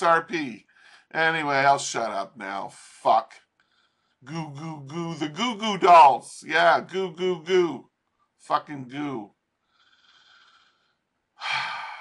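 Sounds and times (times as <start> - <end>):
man breathing in faintly: 0.7 - 1.1, 3.6 - 4.2, 9.6 - 12.0
man sighing loudly: 11.4 - 12.0.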